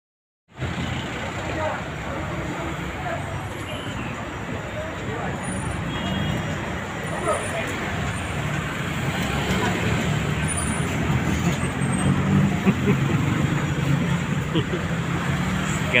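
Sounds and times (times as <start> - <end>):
street traffic noise: 0.5 - 16.0
vehicle engines running: 0.5 - 16.0.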